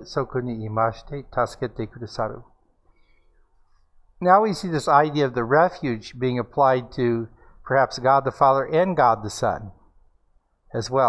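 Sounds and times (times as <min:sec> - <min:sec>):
man speaking: 0:00.0 - 0:02.6, 0:04.2 - 0:09.8, 0:10.7 - 0:11.0.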